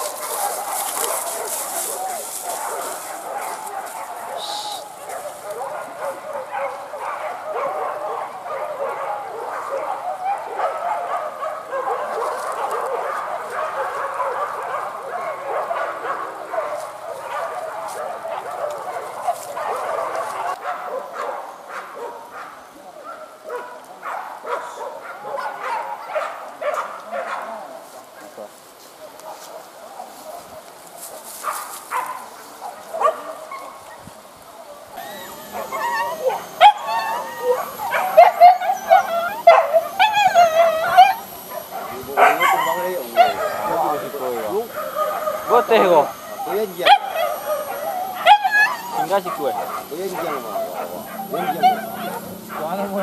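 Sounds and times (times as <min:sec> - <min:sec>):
pack of dogs barking and yelping: 0:00.0 - 0:53.0.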